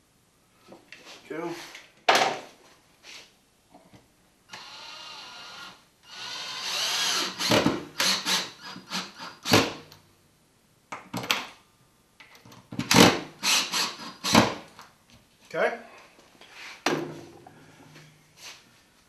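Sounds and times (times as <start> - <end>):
cordless drill driving screw: 4.5 - 9.6, 13.4 - 14.5.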